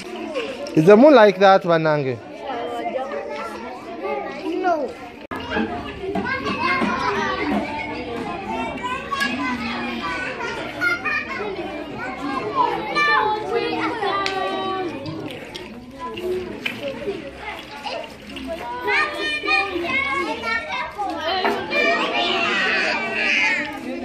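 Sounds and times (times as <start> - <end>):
children chattering: 0.0 - 24.0.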